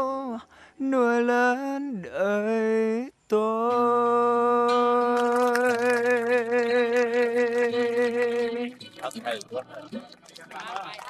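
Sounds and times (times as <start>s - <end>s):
man singing a long note: 2.6s - 8.8s.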